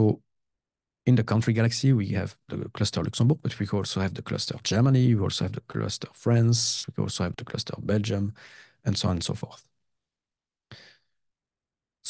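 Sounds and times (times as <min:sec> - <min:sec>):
person breathing in: 0:08.4 - 0:08.8, 0:10.7 - 0:11.1.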